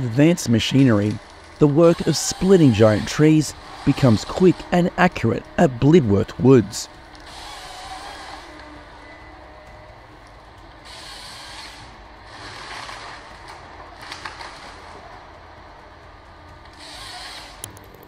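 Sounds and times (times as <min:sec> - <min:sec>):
harvester engine and hydraulics: 0:00.0 - 0:18.0
chainsaw bar cutting trunk: 0:10.9 - 0:14.9.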